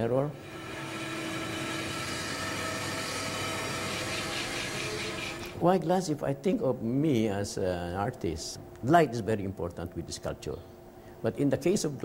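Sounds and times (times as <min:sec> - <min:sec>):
glass-working machine humming and whining: 0:00.0 - 0:05.6.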